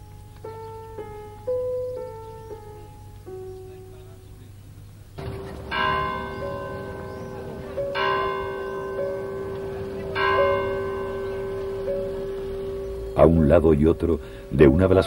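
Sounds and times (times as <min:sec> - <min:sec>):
steady low hum: 0:00.0 - 0:15.0
church bell tolling: 0:05.2 - 0:15.0.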